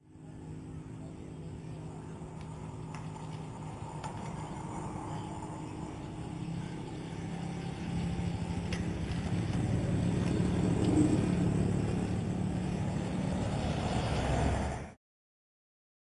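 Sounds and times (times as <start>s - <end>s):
car engine running: 0.0s - 14.7s
road noise: 0.0s - 15.0s.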